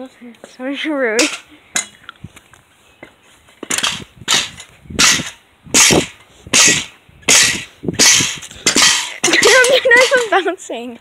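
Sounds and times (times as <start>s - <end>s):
pogo stick bouncing on concrete: 3.6s - 11.0s.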